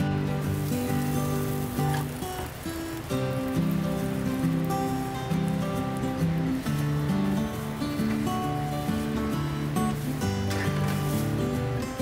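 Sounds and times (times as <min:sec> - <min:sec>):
background music with held notes: 0:00.0 - 0:12.0
fat sizzling and crackling: 0:00.0 - 0:12.0.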